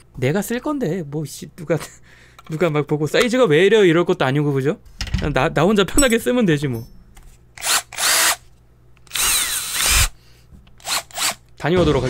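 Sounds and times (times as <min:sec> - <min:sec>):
cordless drill whirring: 0:07.6 - 0:08.4, 0:09.0 - 0:10.2, 0:10.8 - 0:11.4.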